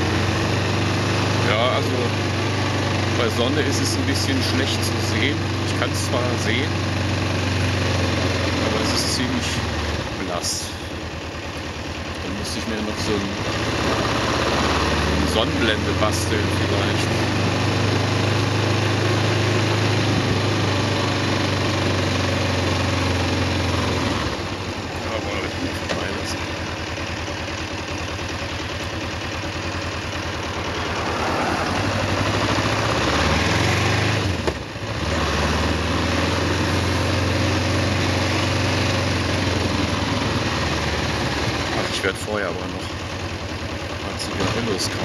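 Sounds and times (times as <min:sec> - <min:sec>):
motorcycle engine running: 0:00.0 - 0:45.0
road and wind noise: 0:13.4 - 0:42.1.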